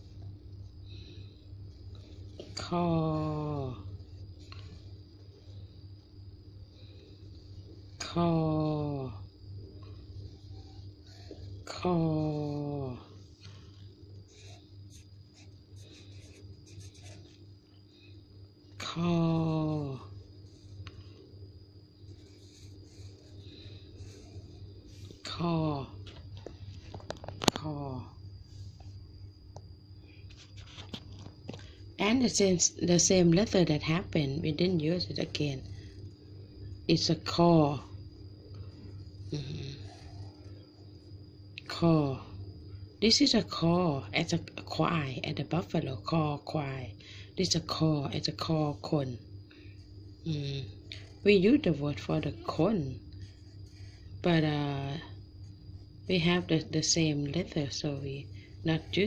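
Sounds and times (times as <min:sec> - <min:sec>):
steady low hum: 0:00.0 - 0:59.0
marker scratching on paper: 0:14.3 - 0:17.4.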